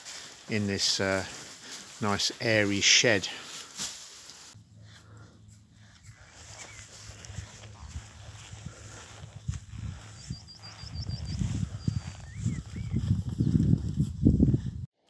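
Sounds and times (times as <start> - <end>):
birds chirping: 4.6 - 8.7, 9.7 - 13.6
bird curling calls: 6.0 - 7.2, 10.1 - 13.0.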